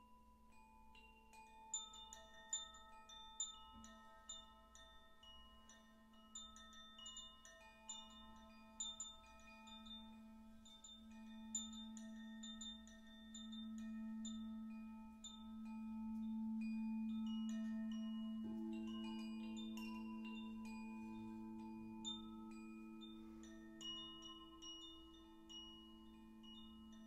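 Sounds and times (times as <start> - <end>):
harmony chime tinkling: 0.0 - 27.0
singing bowl low tone: 0.0 - 27.0.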